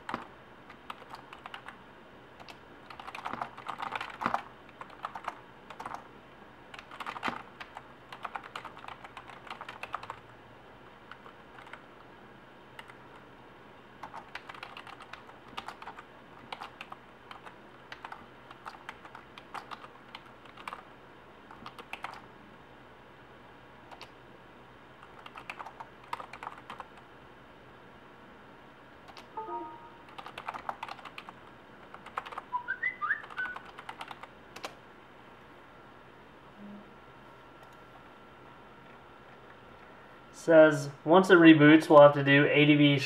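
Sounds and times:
typing on a computer keyboard: 0:00.0 - 0:01.8, 0:02.4 - 0:06.1, 0:06.7 - 0:10.3, 0:11.1 - 0:11.9, 0:12.8 - 0:13.2, 0:14.0 - 0:20.9, 0:21.5 - 0:22.2, 0:23.9 - 0:24.2, 0:25.0 - 0:27.1, 0:29.1 - 0:29.3, 0:30.1 - 0:32.5, 0:33.2 - 0:34.8.

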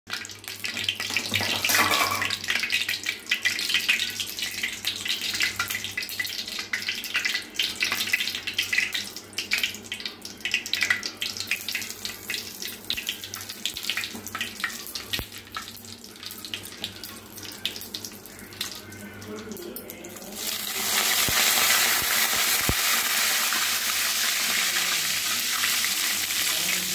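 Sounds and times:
seeds spluttering in hot oil: 0:00.1 - 0:26.9.

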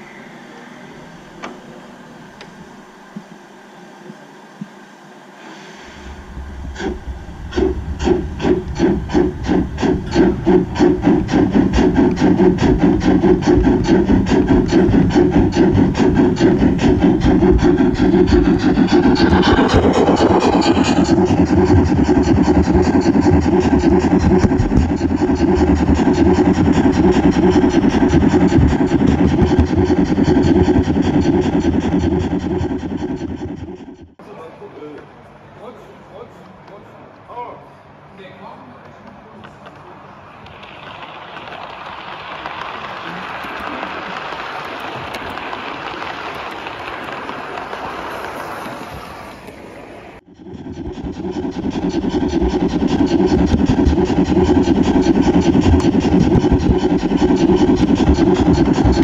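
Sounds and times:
model steam locomotive chuffing: 0:05.4 - 0:34.4, 0:40.4 - 0:59.0
running gear rumbling on track: 0:06.1 - 0:34.2, 0:40.5 - 0:59.0.

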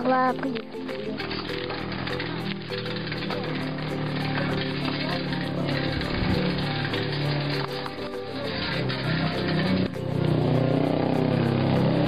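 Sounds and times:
small motorcycle passing by: 0:01.0 - 0:12.0.

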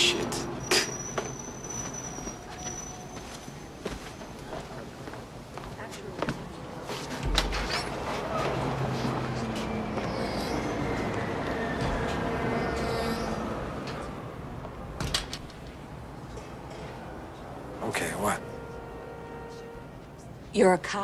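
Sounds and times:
city traffic: 0:00.0 - 0:21.0
footsteps: 0:00.8 - 0:12.8.

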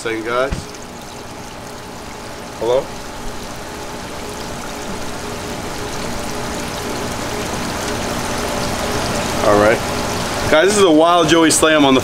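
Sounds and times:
faint steady hum: 0:00.0 - 0:12.0
running water rushing: 0:00.0 - 0:12.0.

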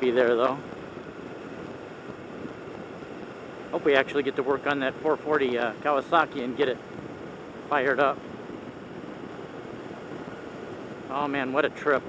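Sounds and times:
wind rush: 0:00.0 - 0:12.0.

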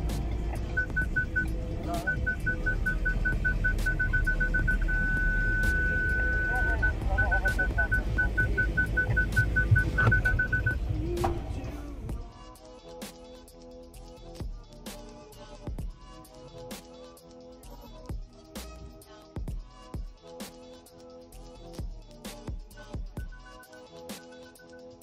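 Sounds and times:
parking sensor beeping: 0:00.5 - 0:11.0.

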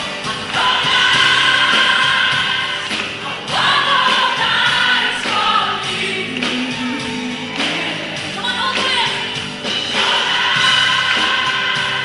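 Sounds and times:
band playing pop music: 0:00.0 - 0:12.0
voices singing together: 0:00.0 - 0:12.0.

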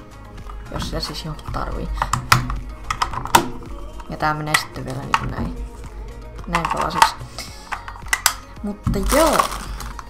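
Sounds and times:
plastic charger clicks and snaps: 0:01.9 - 0:05.4, 0:06.5 - 0:10.0.

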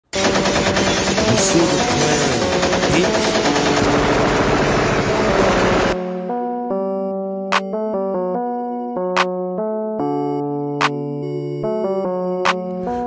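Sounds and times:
automatic gunfire sound effect: 0:00.2 - 0:04.9.

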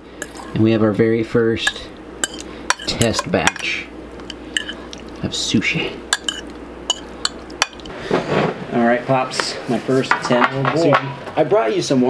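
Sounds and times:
utensil clinking against glass bowl: 0:00.2 - 0:00.6, 0:01.6 - 0:05.0, 0:06.1 - 0:07.9.

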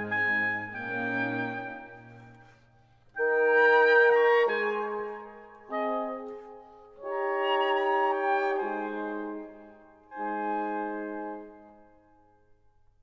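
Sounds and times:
wind instruments playing held chords: 0:00.0 - 0:11.8.

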